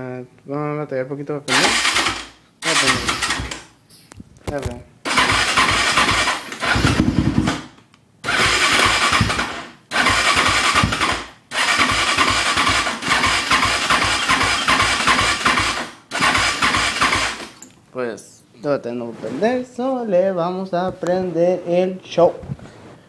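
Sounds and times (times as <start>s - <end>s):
electric starter cranking engine: 1.5s - 3.7s, 5.0s - 17.6s.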